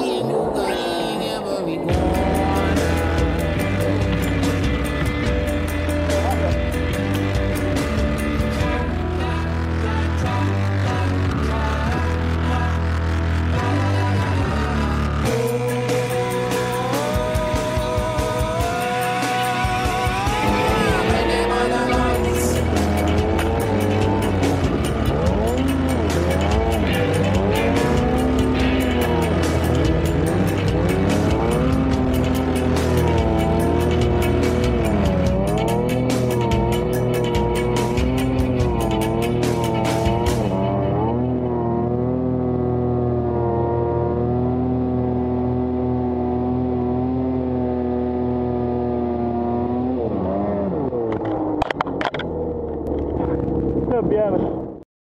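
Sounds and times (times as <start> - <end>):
snowmobile engine revving: 0.0 - 54.8.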